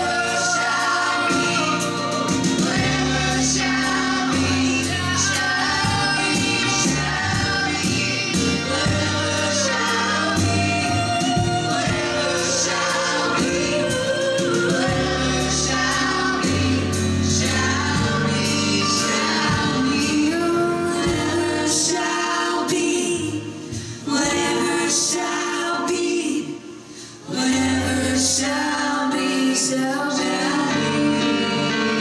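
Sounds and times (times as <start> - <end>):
piano: 0.0 - 32.0
voices singing together: 0.0 - 32.0.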